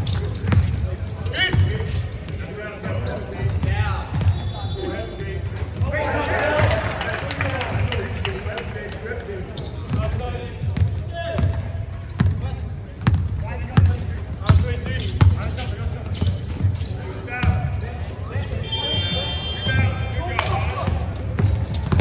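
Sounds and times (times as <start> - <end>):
basketball bouncing on court: 0.0 - 4.5, 9.6 - 16.8, 17.4 - 17.9, 19.0 - 22.0.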